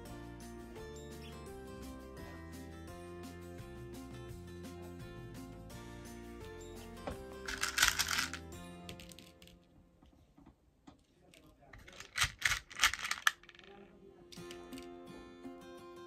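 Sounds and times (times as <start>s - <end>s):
background music: 0.0s - 9.9s, 12.5s - 16.0s
beads rattling and clicking: 7.4s - 9.6s, 11.8s - 13.7s.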